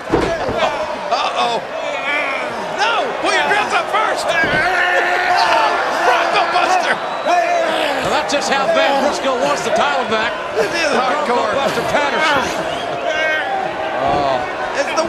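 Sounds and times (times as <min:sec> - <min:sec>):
men's voices: 0:00.0 - 0:15.0.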